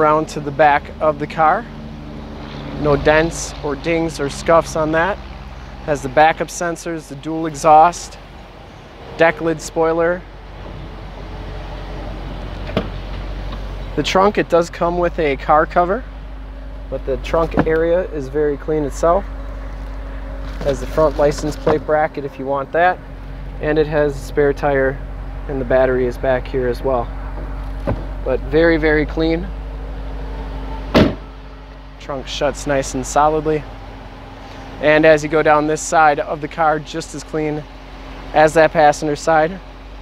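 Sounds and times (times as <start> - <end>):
low hum: 0.0 - 40.0
car trunk lid slamming shut: 12.6 - 13.2, 17.4 - 17.8, 27.4 - 28.2, 30.8 - 31.4
car trunk latch click: 12.6 - 13.6, 30.9 - 31.3.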